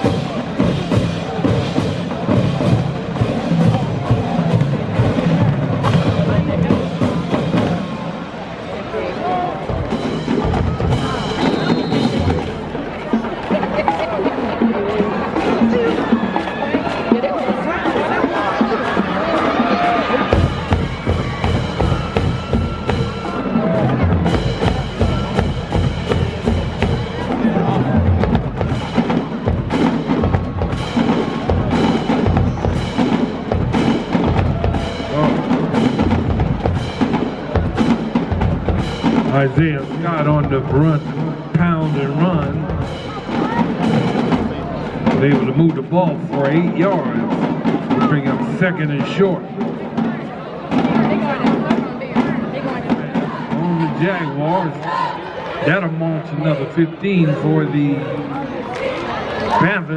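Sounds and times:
bass drums: 0.0 - 8.1, 9.6 - 16.1, 16.8 - 54.4
snare drums: 0.0 - 8.4, 9.6 - 57.8
crowd voices: 0.0 - 59.9.

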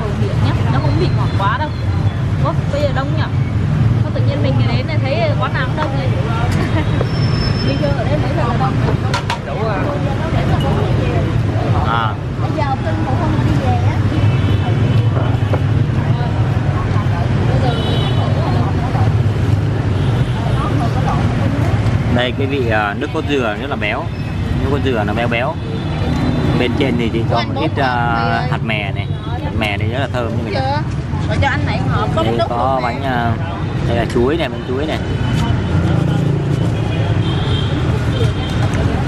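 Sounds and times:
people talking: 0.0 - 3.4, 4.0 - 19.3, 26.6 - 37.2
street traffic rumble: 0.0 - 39.0.

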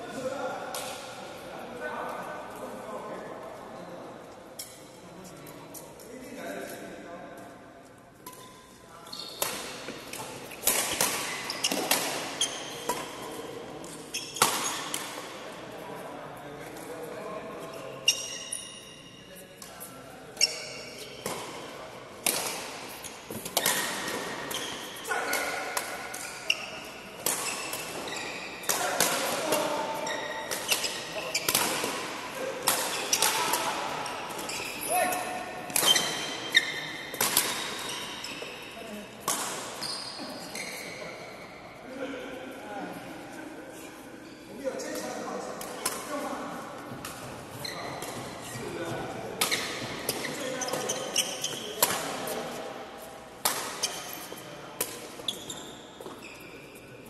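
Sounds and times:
court shoes squeaking: 7.4 - 15.4, 16.5 - 41.9, 43.7 - 57.0
racket striking shuttlecock: 37.1 - 37.9.

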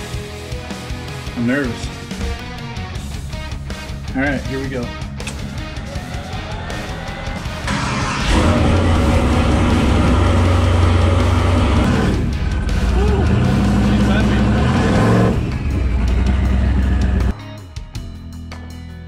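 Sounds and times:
music: 0.0 - 19.0
truck engine accelerating: 5.3 - 17.3.

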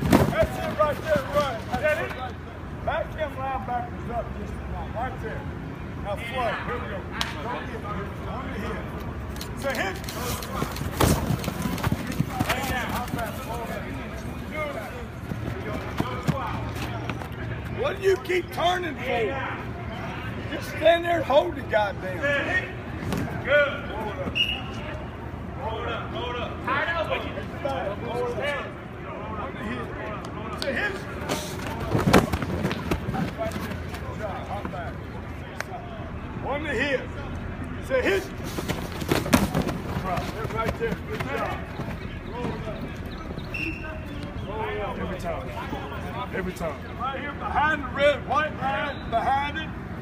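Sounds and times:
men's voices: 0.0 - 50.0
thumps of pads and bodies: 31.8 - 33.5, 38.6 - 40.7.

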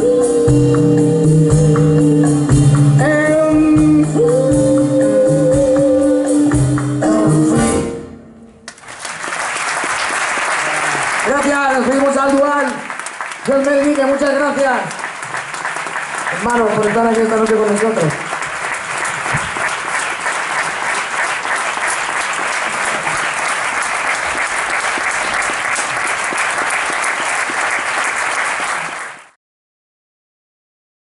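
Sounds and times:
audience applauding: 8.7 - 29.4.

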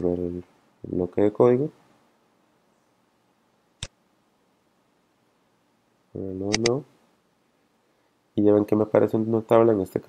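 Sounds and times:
computer mouse click: 6.5 - 6.8.

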